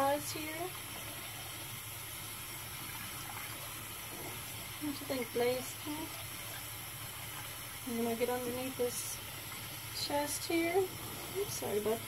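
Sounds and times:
steady water-like hiss: 0:00.0 - 0:12.0.

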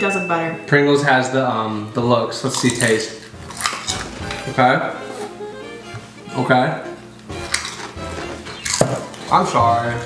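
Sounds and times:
crisps crunching while chewed: 0:02.4 - 0:04.5, 0:07.4 - 0:09.4
background music: 0:02.5 - 0:10.0.

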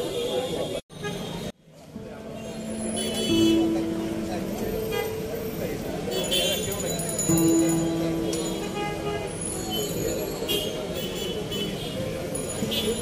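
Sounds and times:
crowd chattering: 0:00.0 - 0:13.0
traffic: 0:00.0 - 0:13.0
vehicle horn: 0:02.5 - 0:03.8, 0:06.1 - 0:06.8, 0:08.2 - 0:13.0.

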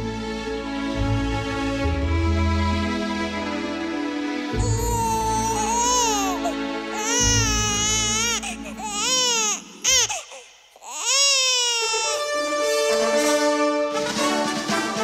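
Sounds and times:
background music: 0:00.0 - 0:15.0
newborn baby crying: 0:04.6 - 0:12.8.

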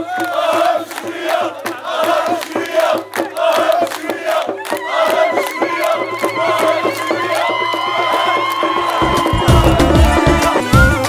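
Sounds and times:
crowd cheering and shouting: 0:00.0 - 0:11.0
music with long high notes: 0:04.5 - 0:11.0.

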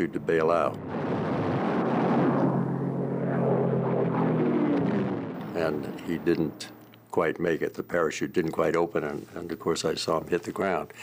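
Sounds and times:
propeller aircraft engine droning: 0:00.0 - 0:07.8.

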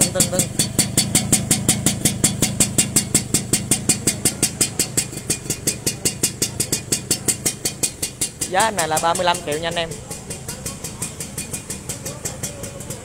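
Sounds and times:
two-stroke engine idling: 0:00.0 - 0:13.0.

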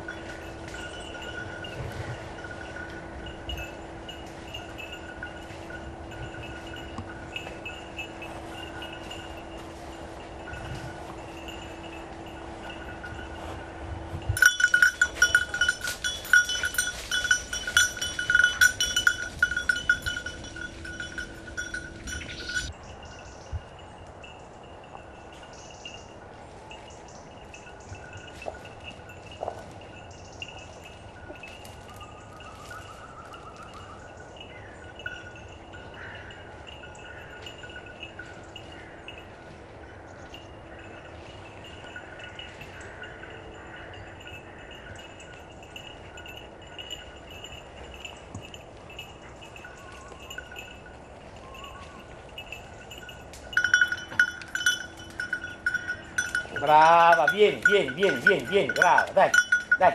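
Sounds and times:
dog bell jingling: 0:00.0 - 0:59.9.

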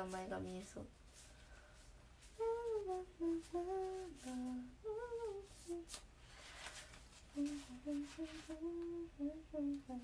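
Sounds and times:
woman humming a tune: 0:02.3 - 0:06.0, 0:07.3 - 0:10.0.

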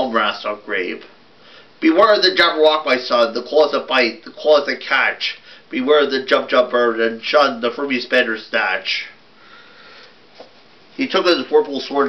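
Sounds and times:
person speaking: 0:11.0 - 0:12.0.

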